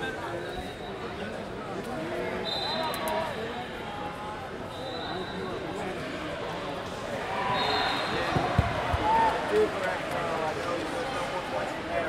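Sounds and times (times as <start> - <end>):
crowd chattering in a hall: 0.0 - 12.0.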